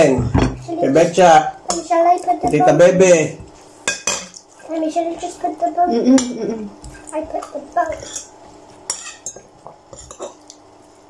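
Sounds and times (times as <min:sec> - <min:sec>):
cutlery clinking on ceramic bowls: 0:03.8 - 0:04.4, 0:08.9 - 0:10.4.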